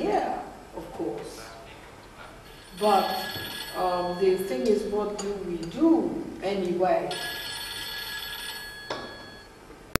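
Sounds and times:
ceramic cup ringing on saucer: 7.2s - 9.5s.

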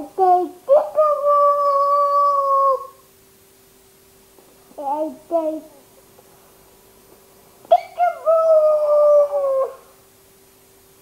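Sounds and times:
baby yelping and calling: 7.7s - 9.9s.

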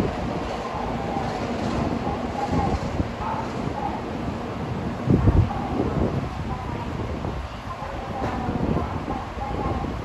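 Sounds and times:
train wheels rumbling on rail: 0.0s - 10.0s.

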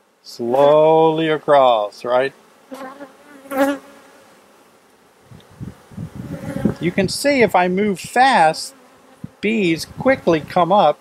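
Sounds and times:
honey bees buzzing: 0.0s - 11.0s.

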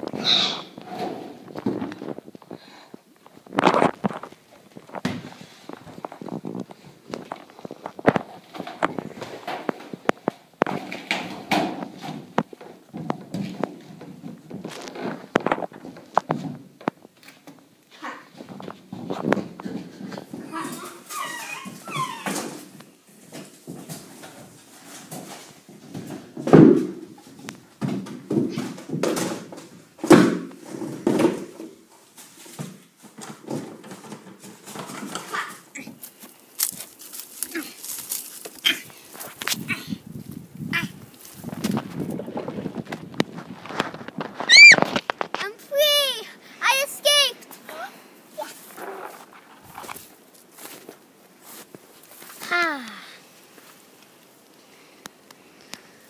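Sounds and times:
rustling: 0.0s - 56.0s
animal whining: 0.2s - 0.8s, 20.5s - 22.4s
knocks and thumps: 3.5s - 17.6s, 23.3s - 31.8s
girl squealing: 44.5s - 44.8s.

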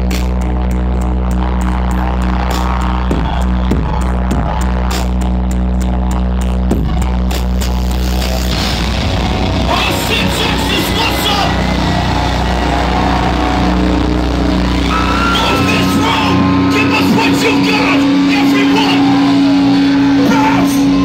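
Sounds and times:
crowd cheering and shouting: 0.0s - 7.3s, 8.0s - 21.0s
electronic intro with bass drone: 0.0s - 21.0s.

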